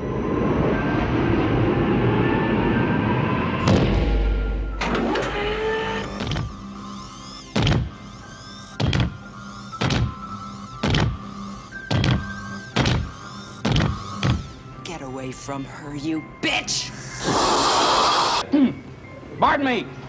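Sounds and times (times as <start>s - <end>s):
music: 0.0s - 20.0s
electric servo whines: 4.7s - 14.6s
rushing hiss with rising tones: 17.1s - 18.4s.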